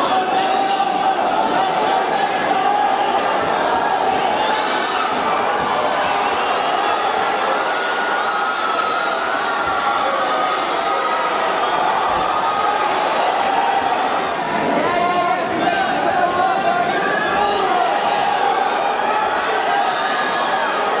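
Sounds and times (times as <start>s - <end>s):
crowd shouting and cheering: 0.0s - 21.0s.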